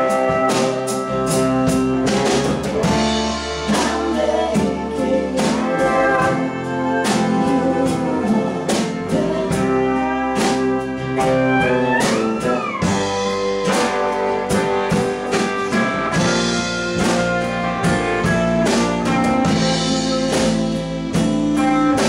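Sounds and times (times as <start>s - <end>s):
country-rock band playing: 0.0s - 22.0s.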